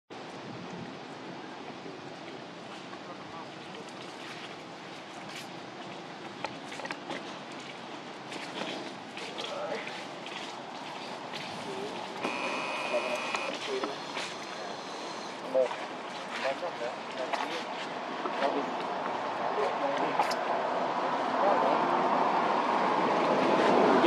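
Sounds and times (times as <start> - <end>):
distant indistinct voices: 11.5 - 22.4
steady high tone: 12.2 - 13.6.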